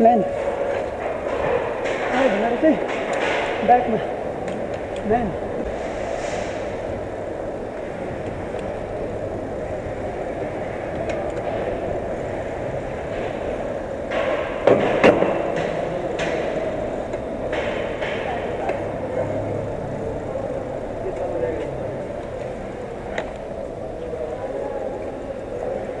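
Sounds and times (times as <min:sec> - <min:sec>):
bike knocks and rattles: 0:00.0 - 0:05.6, 0:06.9 - 0:19.4
bike rolling on concrete: 0:00.0 - 0:26.0.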